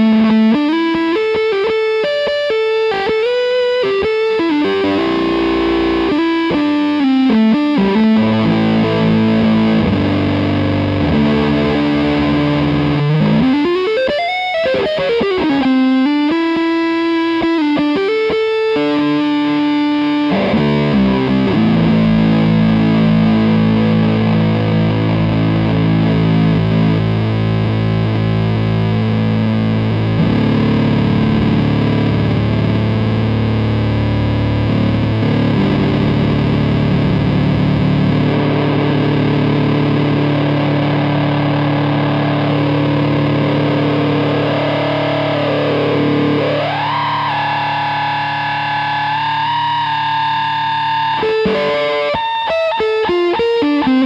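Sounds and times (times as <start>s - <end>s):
fuzzed electric guitar: 0.0s - 54.0s.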